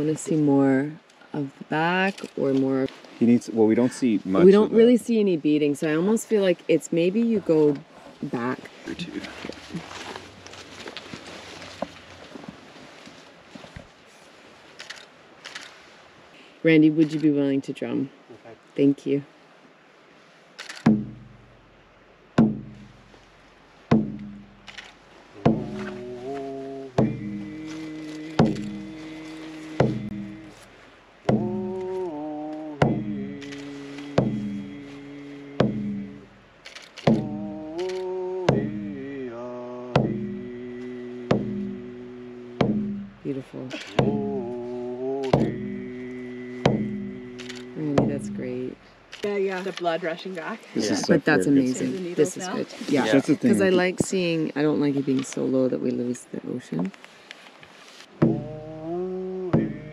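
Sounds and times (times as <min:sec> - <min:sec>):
hand drum beat: 0:20.9 - 0:21.6, 0:22.4 - 0:23.1, 0:23.9 - 0:24.7, 0:25.4 - 0:30.6, 0:31.3 - 0:36.3, 0:37.1 - 0:48.8, 0:50.8 - 0:54.3, 0:58.1 - 0:59.9
man singing: 0:25.4 - 0:30.6, 0:31.3 - 0:36.2, 0:37.2 - 0:42.8, 0:43.8 - 0:48.2, 0:53.0 - 0:53.9, 0:58.2 - 0:59.9.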